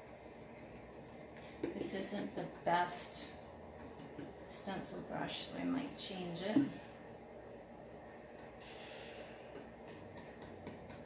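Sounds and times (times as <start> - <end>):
stencil brush dabbing: 0.0 - 6.9, 7.5 - 11.0
soft breathy noise: 8.5 - 10.1.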